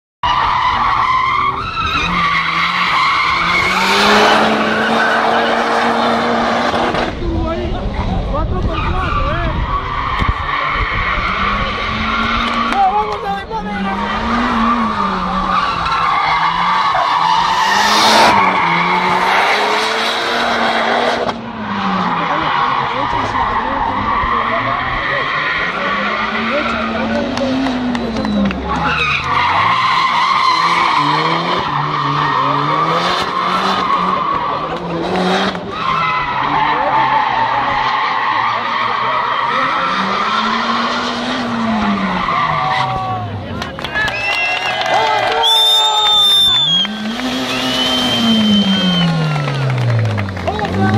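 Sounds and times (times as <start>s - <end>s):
tyres squealing on concrete: 0.2s - 6.2s, 8.6s - 19.8s, 21.7s - 50.9s
car engine revving: 0.2s - 44.1s, 45.2s - 50.9s.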